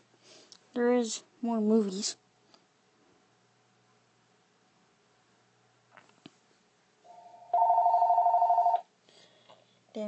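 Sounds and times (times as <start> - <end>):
electronic warbling ring tone: 7.1 - 8.8.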